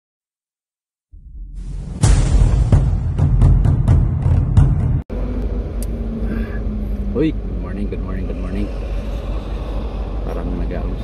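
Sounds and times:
intro music with drum hits: 1.2s - 5.1s.

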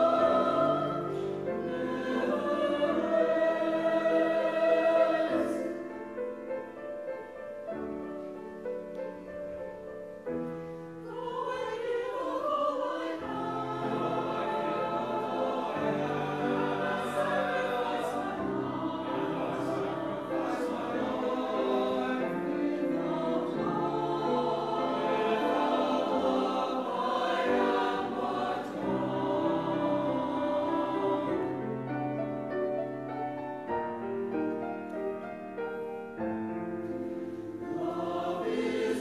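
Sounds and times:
choir singing: 0.0s - 36.2s, 36.8s - 39.0s.

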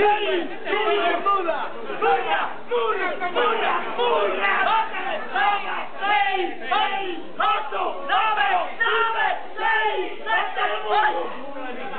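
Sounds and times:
men shouting number calls: 0.0s - 11.4s.

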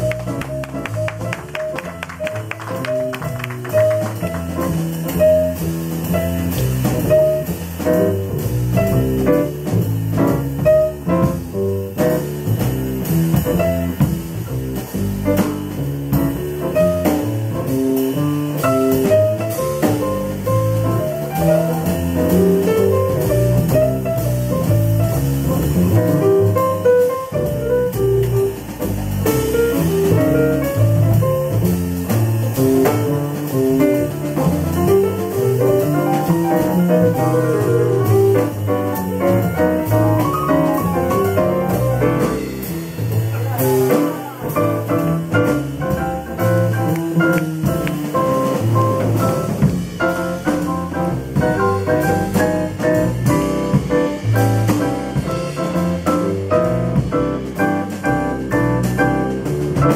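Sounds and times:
small jazz band playing: 0.0s - 59.9s.

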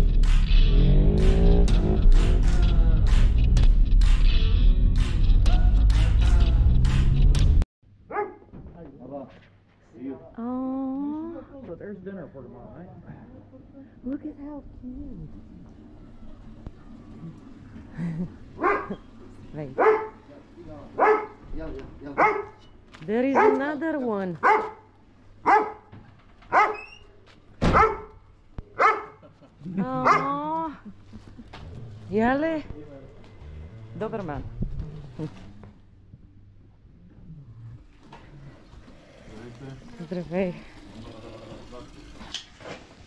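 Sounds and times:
music with a beat: 0.0s - 7.6s
dog barking: 8.1s - 8.5s, 18.6s - 19.0s, 19.8s - 20.2s, 21.0s - 21.4s, 22.2s - 22.6s, 23.3s - 23.8s, 24.4s - 25.9s, 26.5s - 26.9s, 27.6s - 28.2s, 28.8s - 29.2s, 30.0s - 30.4s.

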